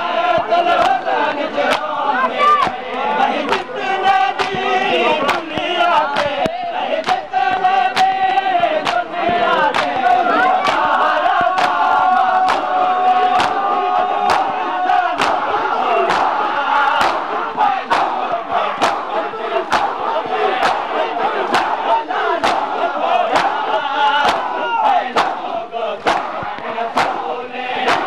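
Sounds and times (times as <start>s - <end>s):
crowd chanting loudly: 0.0s - 28.0s
hands slapping bare chests: 0.4s - 1.1s, 1.7s - 3.7s, 4.3s - 24.6s, 25.2s - 28.0s.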